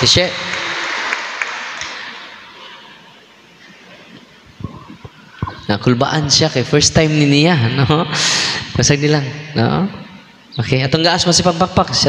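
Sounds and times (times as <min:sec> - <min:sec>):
audience applause: 0:00.0 - 0:03.1.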